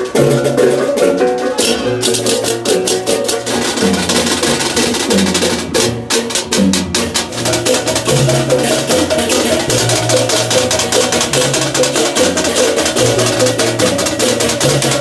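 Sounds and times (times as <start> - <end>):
rapid cymbal clatter: 0.0 - 15.0.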